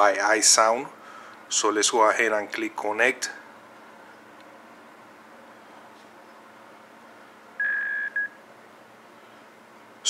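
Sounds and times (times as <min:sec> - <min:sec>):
faint room hiss: 0:00.0 - 0:10.0
electronic speaker beep: 0:07.6 - 0:08.4.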